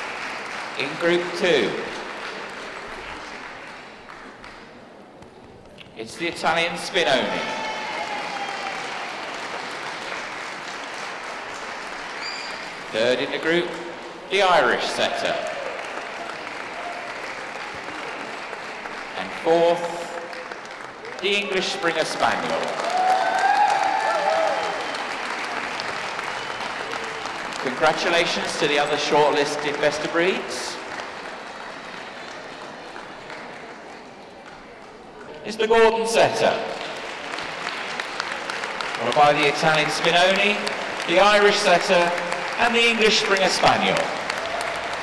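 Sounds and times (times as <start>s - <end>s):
audience applauding: 0.0s - 5.8s, 7.0s - 45.0s.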